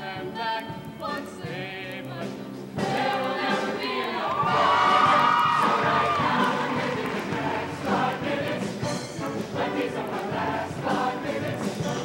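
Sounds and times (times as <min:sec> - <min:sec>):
choir singing with accompaniment: 0:00.0 - 0:12.0.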